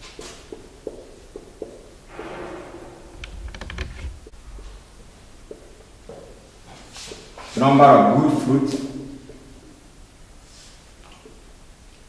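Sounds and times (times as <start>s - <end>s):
dull low rumble: 2.1s - 5.3s.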